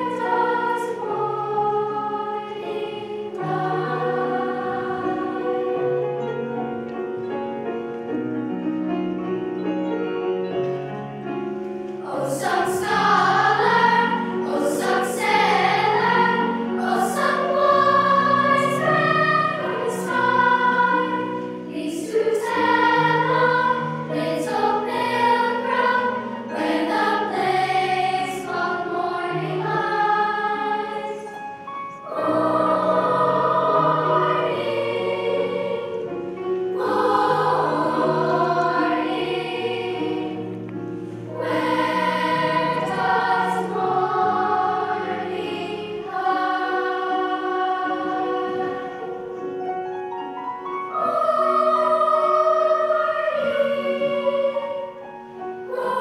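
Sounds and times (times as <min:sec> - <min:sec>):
children's choir singing: 0:00.0 - 0:06.9, 0:11.9 - 0:56.0
piano accompaniment: 0:00.0 - 0:56.0.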